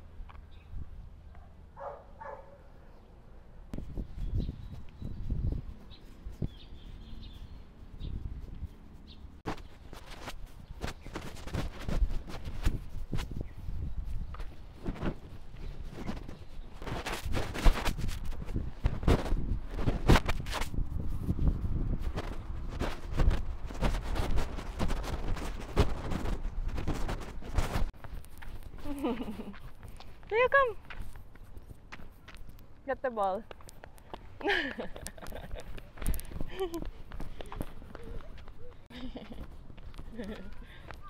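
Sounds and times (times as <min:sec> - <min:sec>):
microphone rubbing on jacket: 0:03.7 - 0:30.0
woman's voice: 0:30.2 - 0:30.8, 0:32.8 - 0:33.5.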